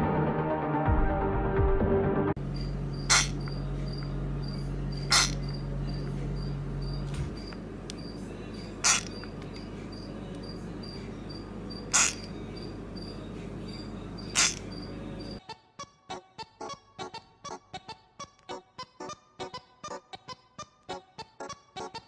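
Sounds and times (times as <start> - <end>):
high pulsing chirp: 2.4 - 15.4
low hum: 2.4 - 15.4
frog screaming: 3.1 - 3.4, 5.1 - 5.5, 8.8 - 9.2, 11.9 - 12.3, 14.3 - 14.7.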